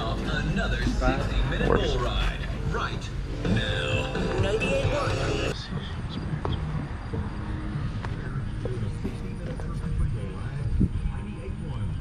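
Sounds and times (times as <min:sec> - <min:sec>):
radio advertisement voice: 0:00.0 - 0:06.1
outdoor background noise: 0:00.0 - 0:12.0.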